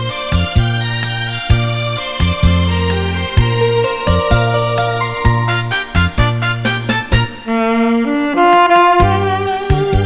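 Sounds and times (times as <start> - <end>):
backing track with bass and drums: 0.0 - 10.0
alto saxophone melody: 1.8 - 10.0.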